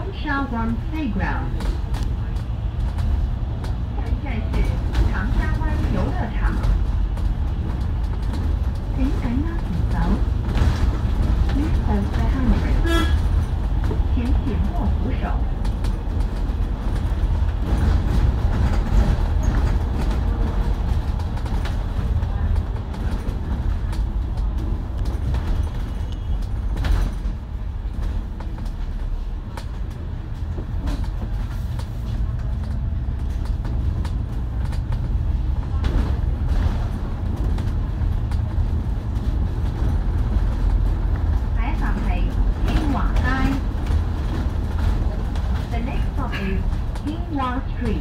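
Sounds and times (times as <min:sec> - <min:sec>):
bus engine and road rumble: 0:00.0 - 0:48.0.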